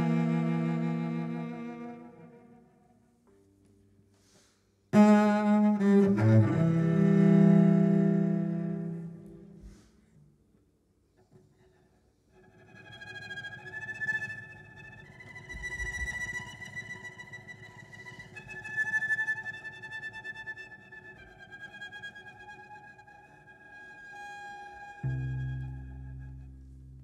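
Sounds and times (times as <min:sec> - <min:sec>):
cello bowed in sustained notes: 0:00.0 - 0:03.0, 0:05.0 - 0:09.9, 0:12.3 - 0:27.0.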